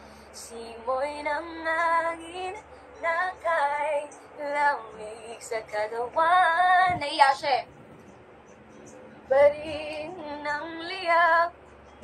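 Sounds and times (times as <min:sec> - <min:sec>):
woman singing ballad: 0:00.4 - 0:07.6, 0:09.3 - 0:11.6.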